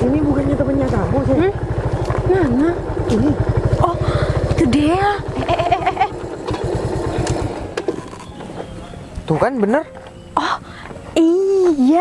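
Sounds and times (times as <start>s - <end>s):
motorcycle engine idling: 0.0s - 10.8s.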